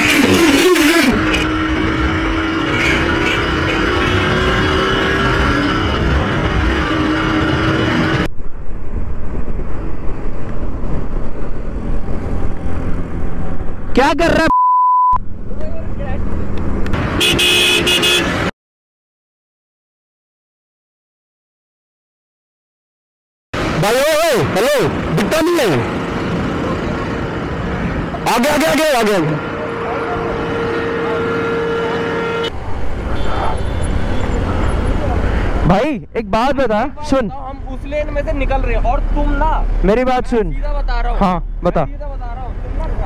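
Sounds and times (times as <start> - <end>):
vehicle horn honking: 0.0 - 5.6, 17.1 - 18.5, 29.4 - 34.4
motorcycle engine: 0.0 - 8.4
road noise: 0.0 - 14.5, 15.1 - 18.5, 23.5 - 43.0
low rumble of wind and engine: 7.9 - 14.4, 15.2 - 17.2, 32.5 - 43.0
steady beep tone: 14.4 - 15.2.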